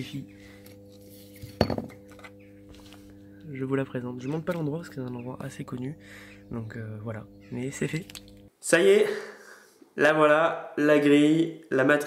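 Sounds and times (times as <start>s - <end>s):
faint low hum: 0.0s - 8.5s
hard object clattering: 1.4s - 2.4s.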